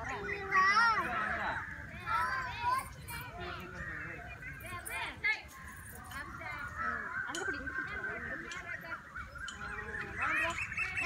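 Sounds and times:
birds calling: 0.0 - 11.0
voices: 0.0 - 11.0.

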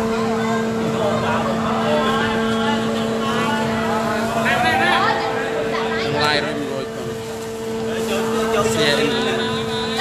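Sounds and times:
crowd chatter: 0.0 - 10.0
two-pitched mechanical hum: 0.0 - 10.0.

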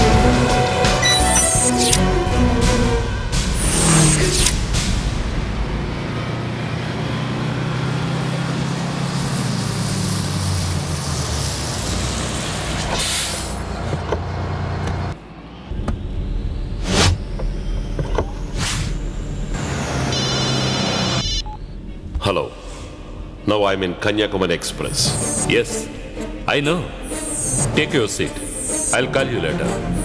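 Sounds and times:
bus engine running: 0.0 - 22.2
high beeping: 0.9 - 4.6, 24.8 - 25.9, 26.9 - 29.0
air brakes hissing: 12.9 - 13.7, 26.9 - 29.0.

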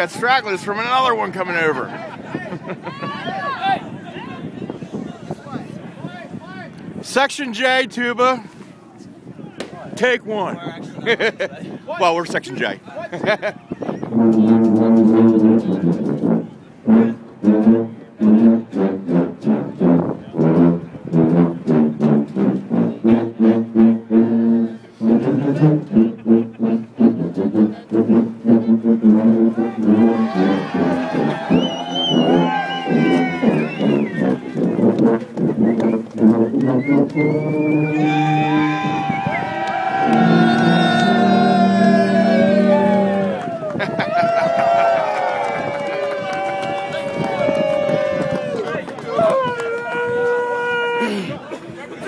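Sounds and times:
sousaphone ensemble playing: 27.5 - 35.6, 39.9 - 43.4.

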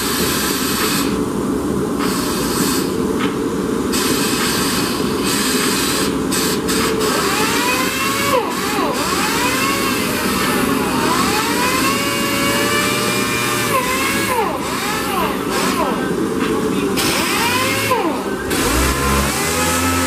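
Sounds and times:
pneumatic tool hissing and whining: 0.0 - 1.2, 2.0 - 3.0, 3.9 - 16.1, 17.0 - 20.0.

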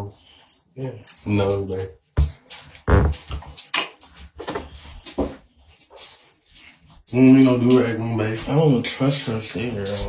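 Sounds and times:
shower water running: 0.0 - 10.0.

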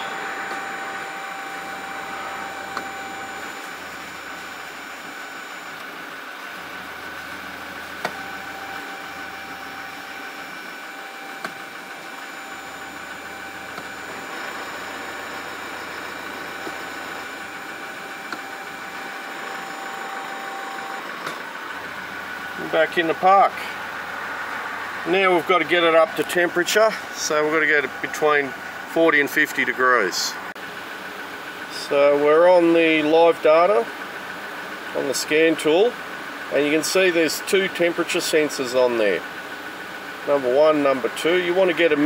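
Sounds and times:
diesel engine idling: 0.0 - 42.0.

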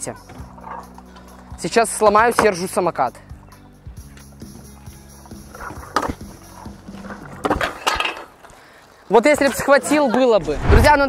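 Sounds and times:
metallic clanks of scooter: 7.0 - 8.4.

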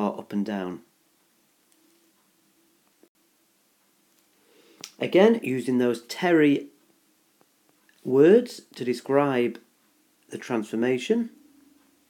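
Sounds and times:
soft breath and mouth click: 4.1 - 5.0.

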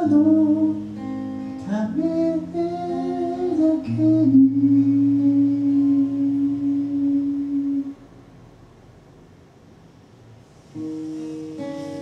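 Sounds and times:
person singing slow notes: 0.0 - 8.1
acoustic guitar: 0.0 - 9.4, 10.1 - 12.0.

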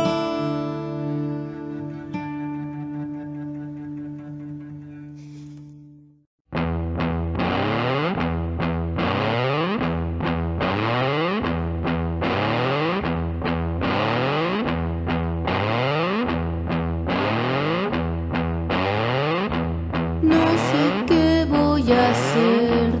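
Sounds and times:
distorted electric guitar: 0.0 - 5.8, 6.5 - 23.0
low bass notes: 6.5 - 23.0.

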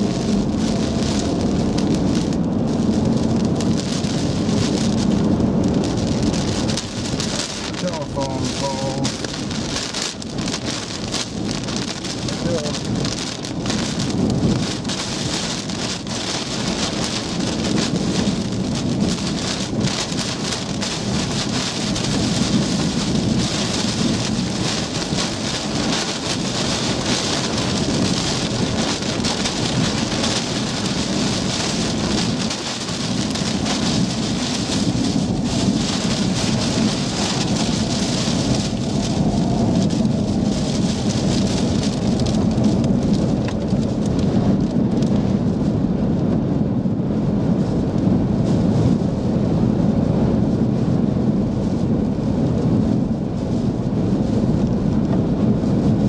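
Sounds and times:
gusting wind buffeting vehicle: 0.0 - 56.0
rain and hail pelting vehicle: 0.0 - 56.0.

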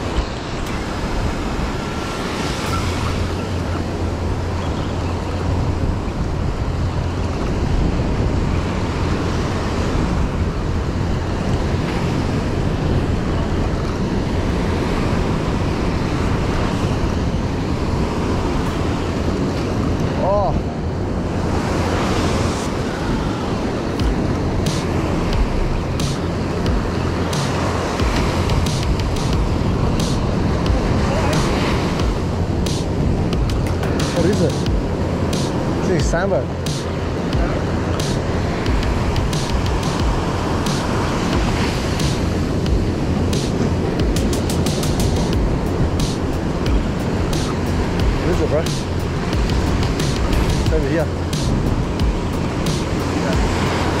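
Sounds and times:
steady low rumble: 0.0 - 54.0
surf breaking on beach: 0.0 - 54.0
wind buffeting microphone: 0.0 - 54.0.

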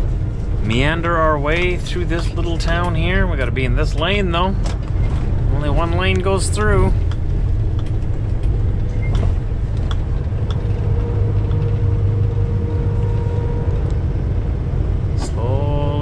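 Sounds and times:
road noise: 0.0 - 16.0
truck diesel engine drone: 0.0 - 16.0.

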